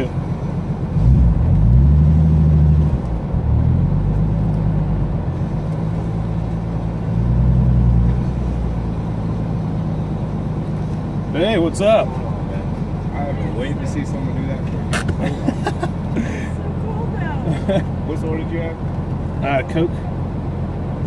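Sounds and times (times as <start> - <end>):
car engine revving in cabin: 0.0 - 21.0.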